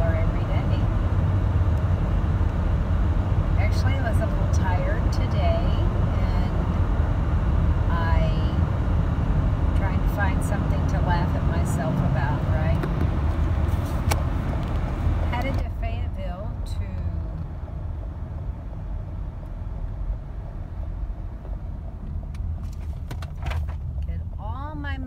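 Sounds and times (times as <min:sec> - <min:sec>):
car cabin road rumble: 0:00.0 - 0:25.0.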